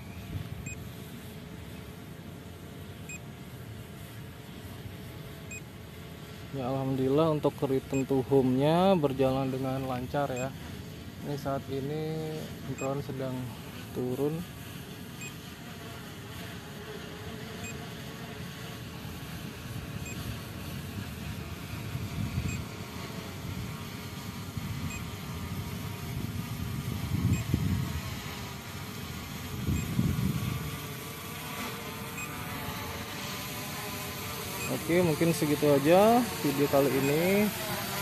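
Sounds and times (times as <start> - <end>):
drone propellers humming: 0.0 - 38.0.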